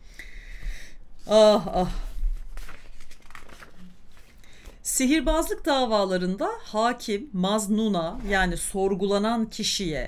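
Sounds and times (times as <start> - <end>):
book pages rustling: 2.0 - 4.8.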